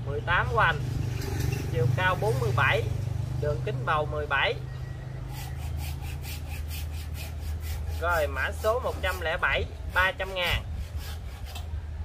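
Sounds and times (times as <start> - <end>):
rhythmic dry scraping: 5.3 - 11.7.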